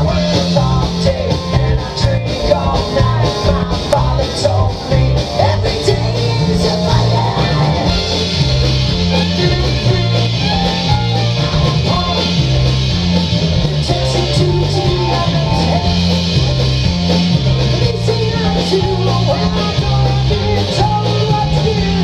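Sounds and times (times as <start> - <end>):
country rock band playing live: 0.0 - 22.0
stepping bass line: 0.0 - 22.0.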